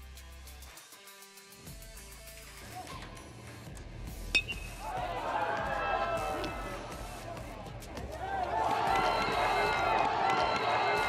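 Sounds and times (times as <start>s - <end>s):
outdoor ballpark background noise: 2.4s - 11.0s.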